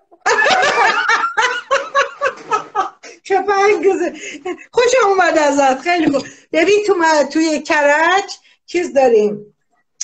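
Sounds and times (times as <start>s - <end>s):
woman laughing loudly: 0.1s - 3.1s.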